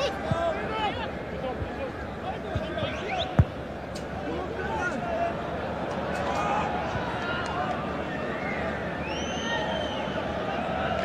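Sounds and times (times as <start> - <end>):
football kick thump: 2.5 - 3.6.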